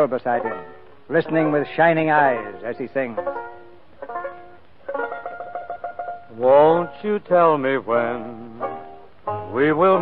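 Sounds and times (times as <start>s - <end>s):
banjo plucked chords: 0.0s - 10.0s.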